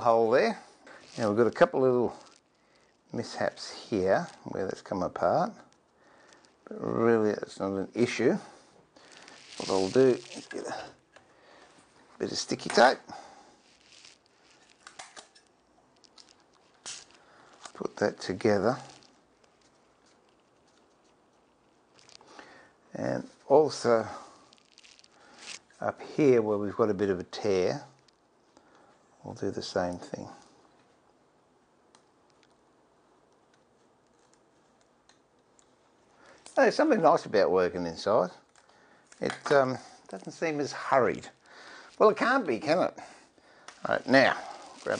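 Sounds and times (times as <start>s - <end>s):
sticky tape pulled from dispenser: 9.1s - 10.7s, 13.7s - 17.9s, 24.4s - 25.7s.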